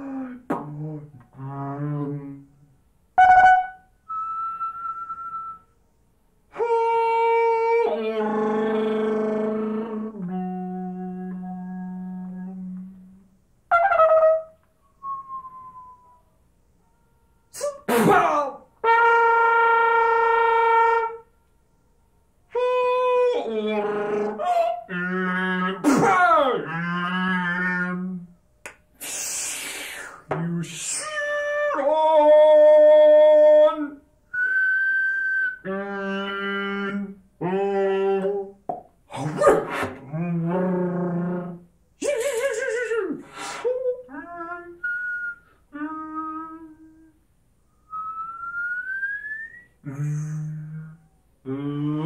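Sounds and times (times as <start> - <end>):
solo trumpet: 3.2 - 5.6, 6.5 - 16.1, 18.8 - 21.8.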